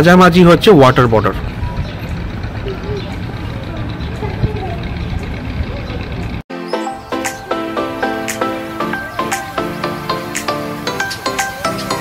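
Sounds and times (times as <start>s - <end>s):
faint distant voices: 1.2s - 6.4s.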